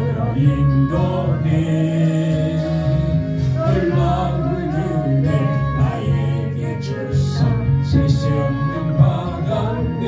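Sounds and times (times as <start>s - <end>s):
instrumental accompaniment: 0.0s - 10.0s
man singing into a microphone: 0.0s - 10.0s.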